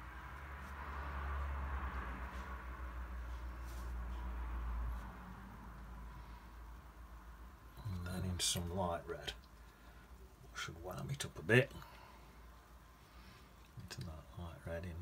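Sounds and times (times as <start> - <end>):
low steady hum: 0.0 - 15.0
brush swishing on paper: 0.2 - 5.8.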